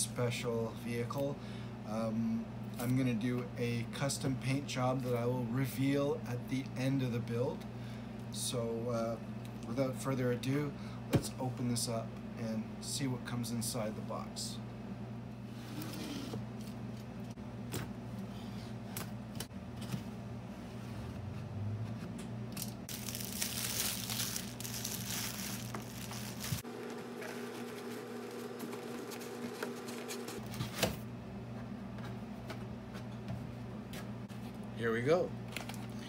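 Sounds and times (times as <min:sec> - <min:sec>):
steady low hum: 0:00.0 - 0:36.0
plastic wrap crinkling and tearing: 0:22.9 - 0:26.6.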